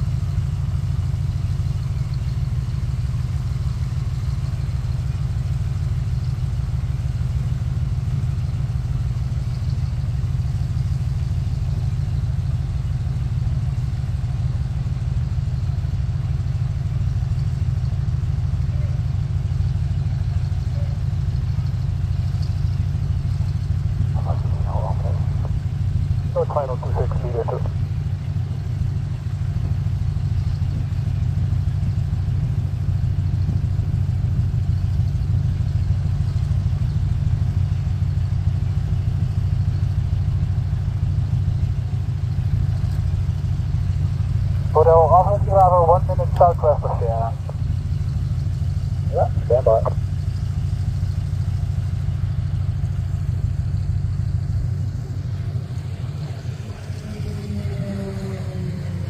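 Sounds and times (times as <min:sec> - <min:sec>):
low engine rumble: 0:00.0 - 0:59.0
voice over aircraft radio: 0:18.6 - 0:19.0, 0:20.5 - 0:21.0, 0:24.0 - 0:28.2, 0:44.6 - 0:48.0, 0:48.9 - 0:50.3
light aircraft flying past: 0:54.9 - 0:59.0.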